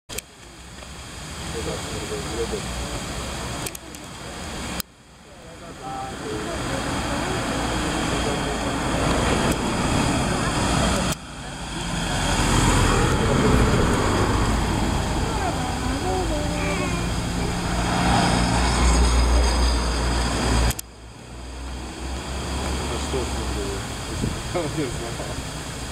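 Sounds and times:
road traffic noise: 0.1 - 25.9
bus engine rumbling: 0.2 - 25.9.

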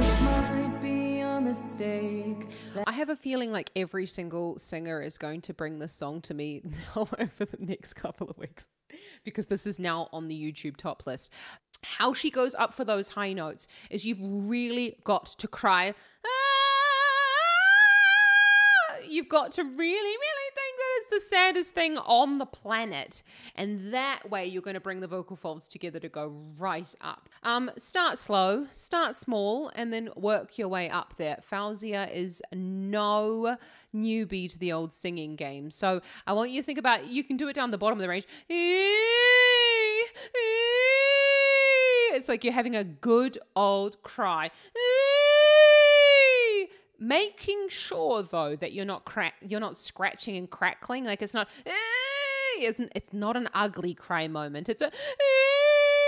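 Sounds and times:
woman singing sustained vowel: 0.0 - 2.9, 16.3 - 18.9.

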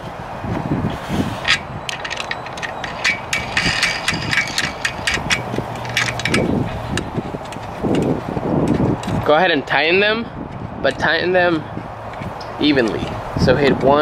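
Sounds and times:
plastic nuts clicking and tapping: 1.5 - 9.2.

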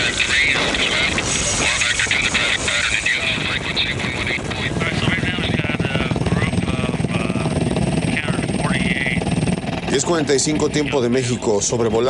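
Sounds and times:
crew voices on radio: 0.0 - 9.2
helicopter rotor chopping: 0.0 - 12.0.

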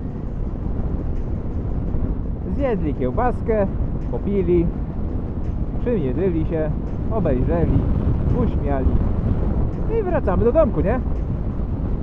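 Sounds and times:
motorcycle wind and road rumble: 0.0 - 12.0.

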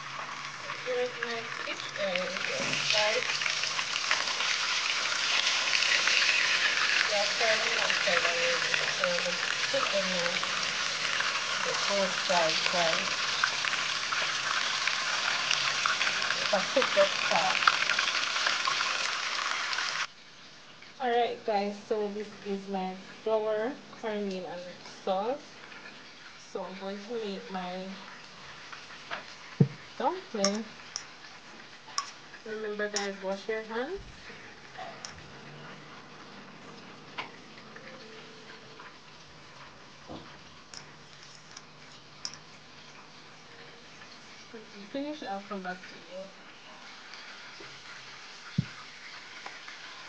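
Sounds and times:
fish frying in sizzling oil: 0.0 - 50.0.

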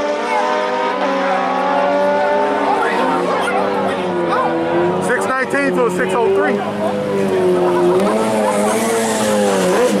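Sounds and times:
racing engine at high revs: 0.0 - 10.0.

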